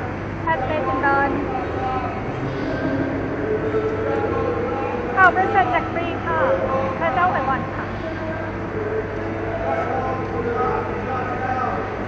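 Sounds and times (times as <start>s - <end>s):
low rumble of city traffic: 0.0s - 12.0s
person's voice: 0.5s - 2.2s, 4.2s - 8.6s.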